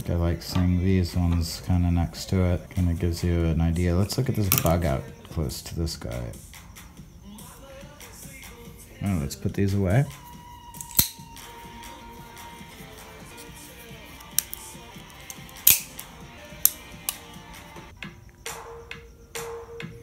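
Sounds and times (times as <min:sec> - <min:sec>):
faint music: 0:00.0 - 0:20.0
folding knives clacking on wood: 0:14.2 - 0:16.0.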